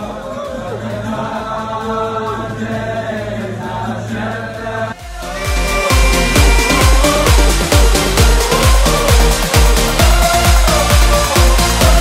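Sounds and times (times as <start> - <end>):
men singing in chorus: 0.0 - 12.0.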